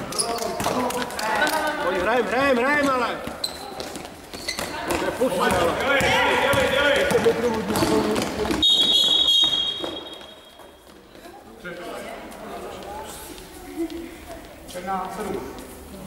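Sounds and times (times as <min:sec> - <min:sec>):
referee whistle blast: 0:08.6 - 0:10.4.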